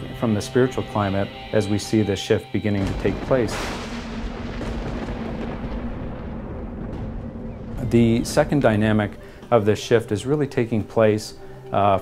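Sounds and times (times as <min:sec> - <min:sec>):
low thunder-like drone: 0:02.8 - 0:10.1.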